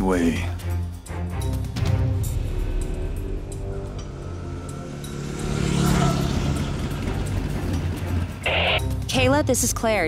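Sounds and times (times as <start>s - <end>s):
dirt bike engine: 4.2s - 8.8s.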